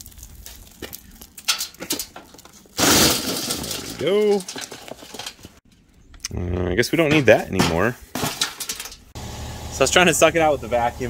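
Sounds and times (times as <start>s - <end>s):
glass crashing into metal can: 2.8s - 5.3s, 7.6s - 9.0s.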